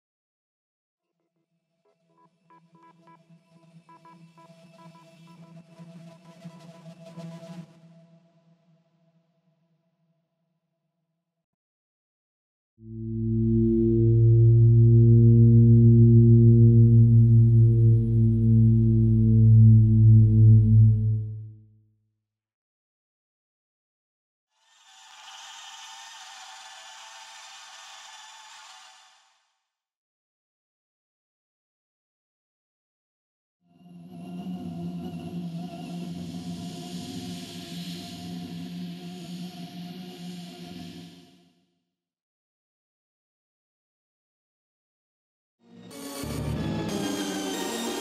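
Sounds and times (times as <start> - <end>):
low synth drone: 12.8 - 21.6.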